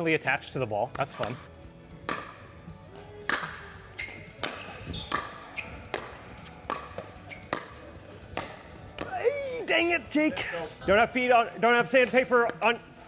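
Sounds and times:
ball bouncing on court: 2.0s - 9.2s
paddles hitting plastic ball: 2.0s - 9.3s.

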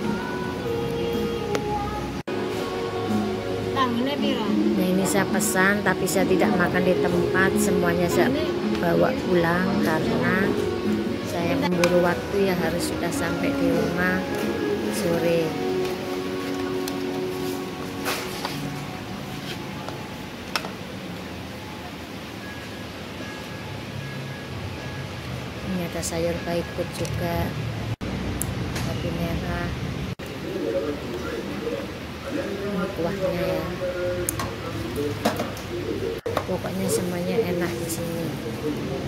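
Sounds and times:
soft background music: 0.0s - 19.8s.

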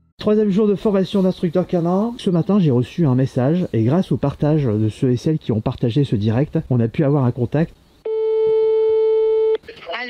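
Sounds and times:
phone ringback beep: 8.1s - 9.6s.

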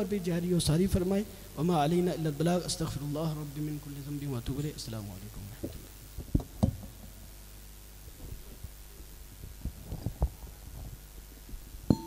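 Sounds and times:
electrical hum through speakers: 0.0s - 12.0s
microphone handling thumps: 5.4s - 7.2s, 8.1s - 12.0s.

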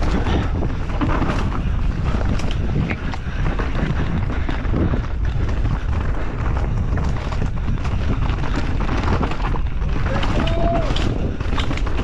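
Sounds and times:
bike rattling over stones: 0.0s - 12.0s
wind buffeting microphone: 0.0s - 12.0s.

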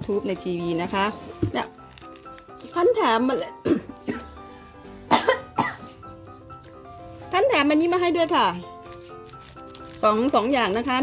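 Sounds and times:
background music: 0.0s - 11.0s
woman coughing: 3.6s - 4.3s, 5.1s - 5.9s.

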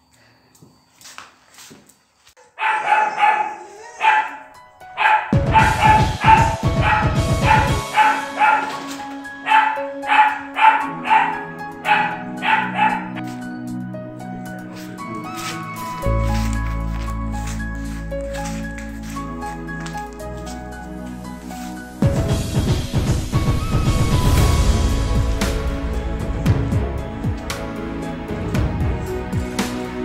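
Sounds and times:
dog barking short high barks: 2.6s - 4.4s, 9.5s - 13.1s
background music held notes: 3.9s - 30.0s.

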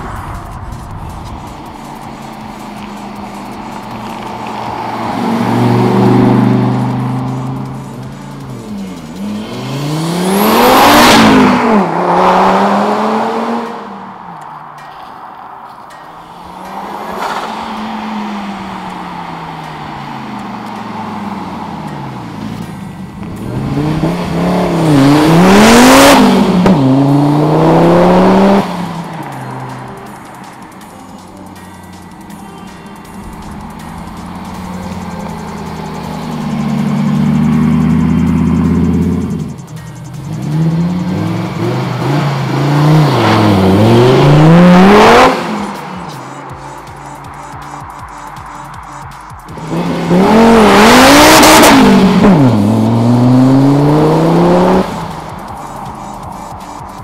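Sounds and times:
car engine at full throttle: 0.0s - 32.4s, 33.0s - 57.0s.

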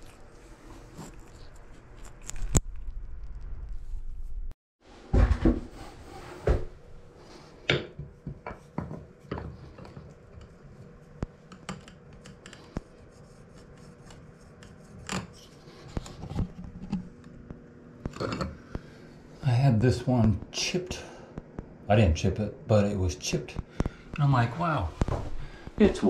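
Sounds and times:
faint steady hum: 5.2s - 26.0s.

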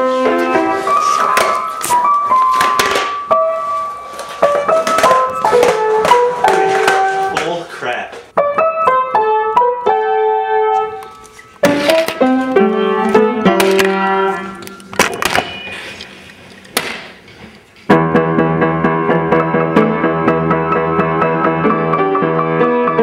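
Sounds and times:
piano music: 0.0s - 7.6s, 8.3s - 16.3s, 17.9s - 23.0s.

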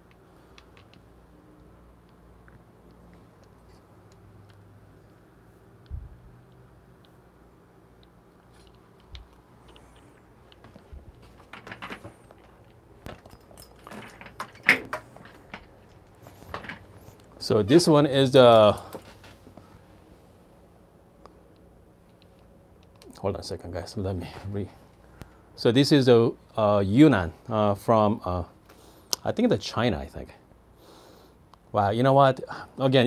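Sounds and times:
faint low hum: 0.0s - 33.0s
phone being handled: 8.4s - 17.4s.

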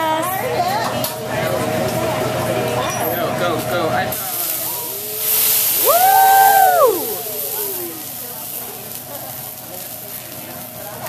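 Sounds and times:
griddle sizzling: 3.5s - 11.0s
person exclaiming: 5.8s - 8.0s.

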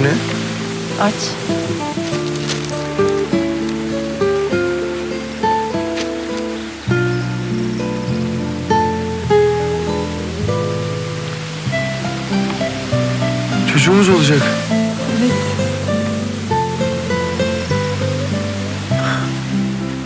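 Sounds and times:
soft background music: 0.0s - 20.0s.

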